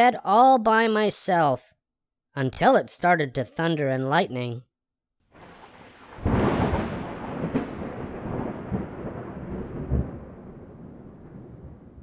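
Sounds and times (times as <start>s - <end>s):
thunder boom: 5.3s - 12.0s
thunder crack: 5.3s - 12.0s
rolling thunder rumble: 5.4s - 12.0s.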